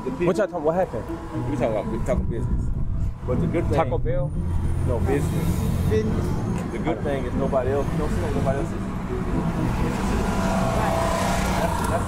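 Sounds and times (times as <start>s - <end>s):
van engine and road rumble: 0.8s - 12.0s.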